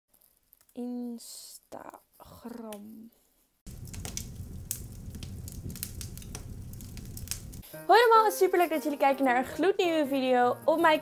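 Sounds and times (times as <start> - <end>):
crackles and clicks: 0.1 - 0.8, 3.7 - 7.6
low rumble: 3.7 - 7.6.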